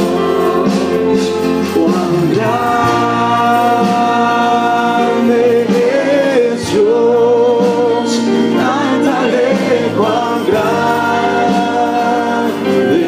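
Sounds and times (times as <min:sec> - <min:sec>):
instrumental accompaniment: 0:00.0 - 0:13.0
voices singing held notes: 0:00.0 - 0:13.0.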